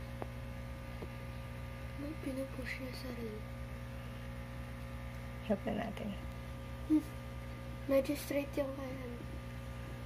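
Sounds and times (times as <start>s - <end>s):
steady low electrical hum: 0.0s - 10.0s.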